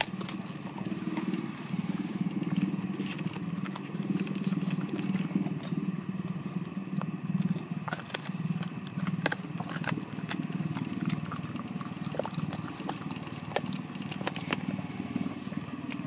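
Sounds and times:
dog chewing crunching: 0.0 - 16.0.

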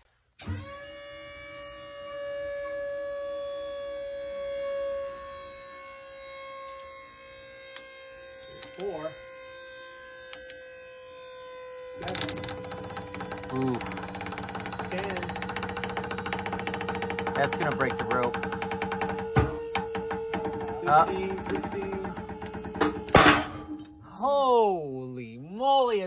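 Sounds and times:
motor whine: 0.4 - 23.9.

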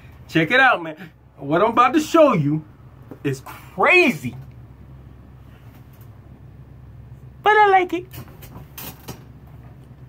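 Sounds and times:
steady low hum: 0.0 - 10.0
rustles and knocks of handling: 8.1 - 10.0.

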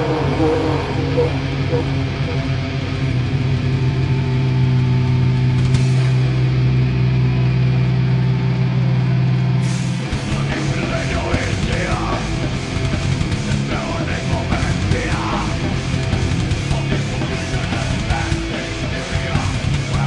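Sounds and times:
wavering voices: 0.0 - 4.9, 10.0 - 12.8
electric guitars droning: 0.0 - 20.0
heavy metal band playing: 0.0 - 20.0.

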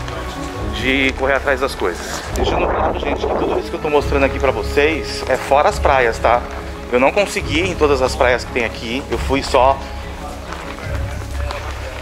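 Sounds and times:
faint music: 0.0 - 12.0
faint voices: 0.0 - 12.0
wind rumble on microphone: 2.3 - 3.8.

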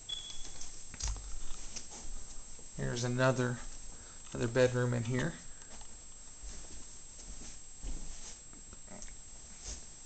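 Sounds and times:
footsteps: 0.1 - 8.6.

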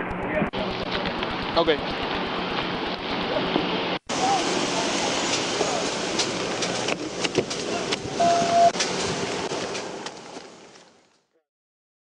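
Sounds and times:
steady background rush: 0.0 - 10.9.

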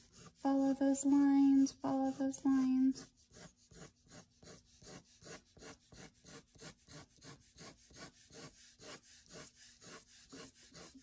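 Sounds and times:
pencil strokes on paper: 0.0 - 11.0.

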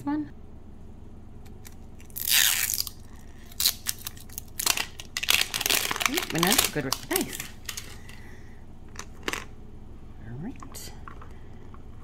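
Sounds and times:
plastic wrapper ripping: 2.0 - 8.2
plastic crinkling: 2.1 - 8.2.

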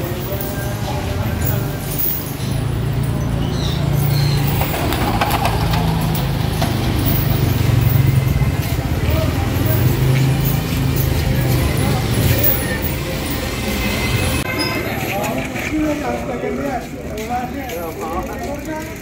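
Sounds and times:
vehicle engine running: 2.5 - 14.1.

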